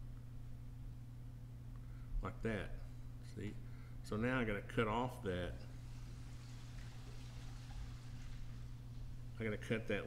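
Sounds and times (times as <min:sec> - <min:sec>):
low hum: 0:00.0 - 0:10.0
faint hiss: 0:05.1 - 0:10.0.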